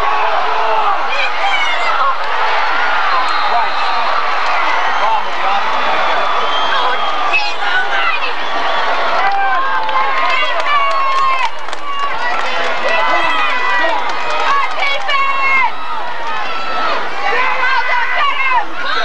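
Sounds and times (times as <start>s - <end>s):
crowd talking and shouting: 0.0s - 19.0s.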